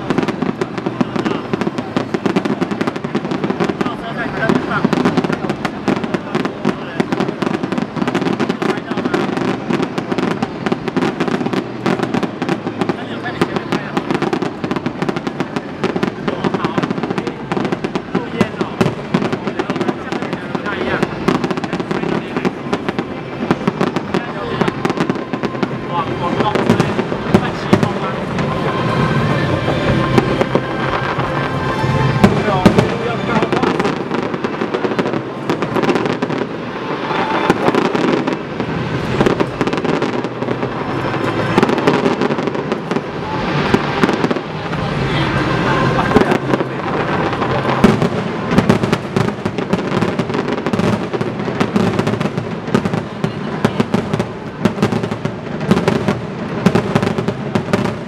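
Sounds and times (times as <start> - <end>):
fireworks bangs and crackles: 0.0 - 58.0.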